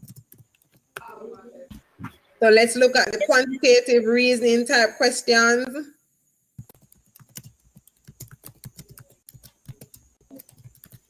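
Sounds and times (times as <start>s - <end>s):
computer keyboard typing: 0.0s - 0.8s, 6.6s - 11.0s.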